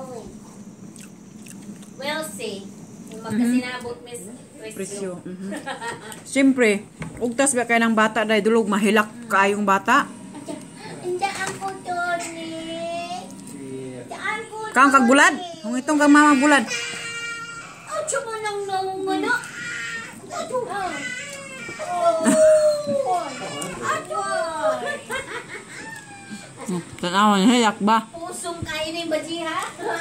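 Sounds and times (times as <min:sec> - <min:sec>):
children talking: 0:10.5 - 0:13.5, 0:14.1 - 0:26.9.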